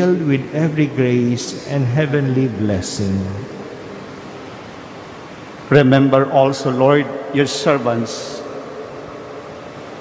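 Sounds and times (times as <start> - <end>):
man speaking: 0.0 - 3.6, 5.7 - 8.6
background hiss: 0.0 - 10.0.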